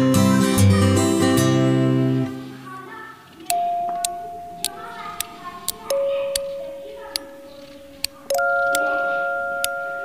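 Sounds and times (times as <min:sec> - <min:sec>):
background music with bell-like notes: 0:06.0 - 0:10.0.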